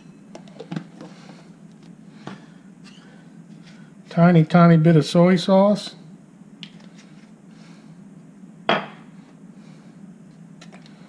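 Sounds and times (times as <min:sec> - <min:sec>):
low steady hum: 0:00.0 - 0:11.0
bottle set down on counter: 0:08.7 - 0:09.0.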